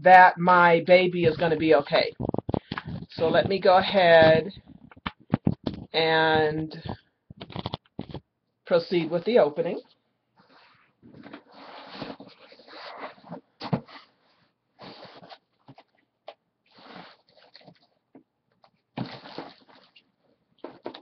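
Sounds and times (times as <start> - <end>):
cardboard box rustling and scraping: 10.4 - 15.9, 16.7 - 17.8, 19.0 - 20.0.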